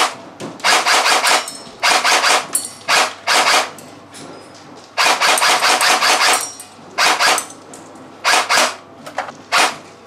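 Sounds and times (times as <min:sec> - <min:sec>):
airsoft gun firing bursts: 0:00.0 - 0:03.7, 0:05.0 - 0:06.4, 0:07.0 - 0:07.4, 0:08.2 - 0:08.8.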